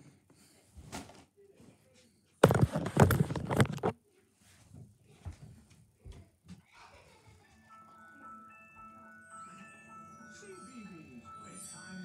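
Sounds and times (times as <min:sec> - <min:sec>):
tinkling chime melody from television: 0:07.0 - 0:12.0.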